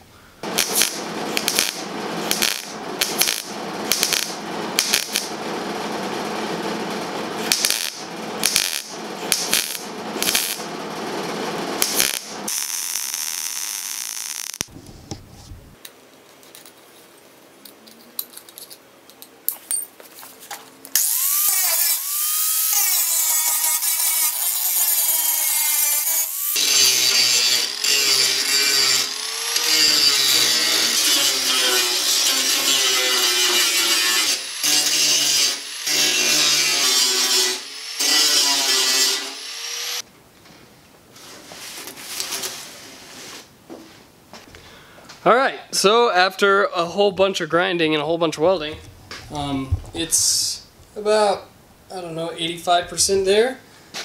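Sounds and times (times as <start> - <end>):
welder crackling: 0.4 - 15.8, 21.0 - 40.0
angle grinder grinding steel: 0.5 - 10.7, 21.0 - 40.0.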